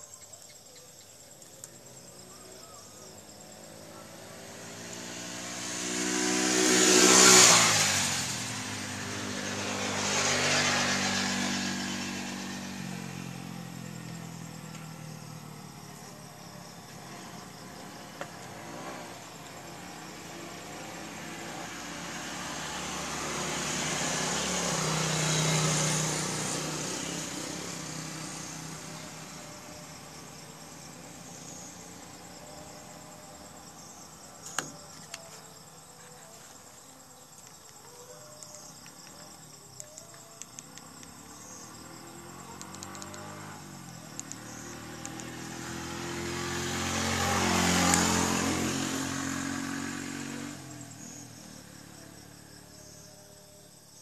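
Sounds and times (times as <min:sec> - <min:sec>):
motor vehicles passing by: 0:00.4 - 0:54.0.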